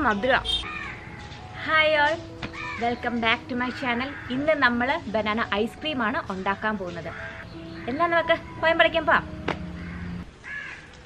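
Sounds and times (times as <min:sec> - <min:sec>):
bird calling: 0:02.4 - 0:04.8, 0:06.9 - 0:08.5, 0:09.6 - 0:11.0.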